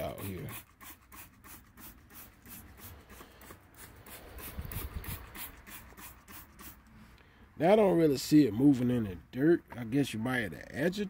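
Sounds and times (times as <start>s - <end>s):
spray bottle squirting: 0.1s - 6.9s.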